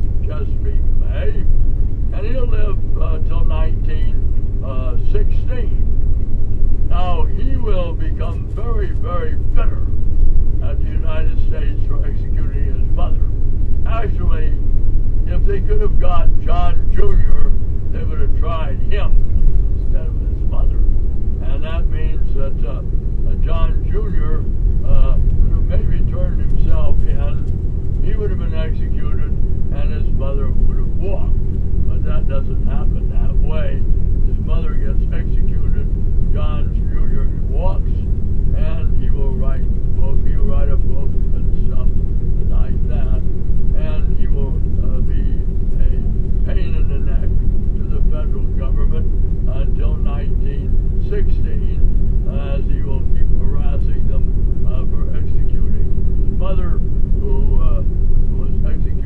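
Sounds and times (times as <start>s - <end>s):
vehicle engine and road drone: 0.0s - 59.0s
indistinct talking: 0.2s - 1.5s, 2.1s - 5.9s, 6.8s - 9.9s, 10.6s - 14.6s, 15.2s - 59.0s.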